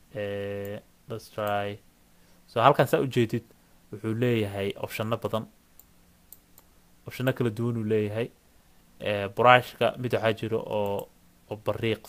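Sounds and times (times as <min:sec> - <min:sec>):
man speaking: 0:00.1 - 0:01.8, 0:02.5 - 0:05.5, 0:07.1 - 0:08.4, 0:09.0 - 0:12.0
faint computer mouse clicks: 0:05.8 - 0:06.7.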